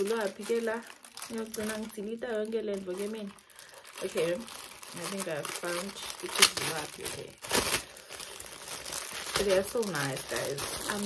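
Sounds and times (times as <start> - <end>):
woman talking: 0.0 - 3.4, 4.0 - 7.4, 9.3 - 11.0
plastic packaging crinkling: 0.0 - 11.0.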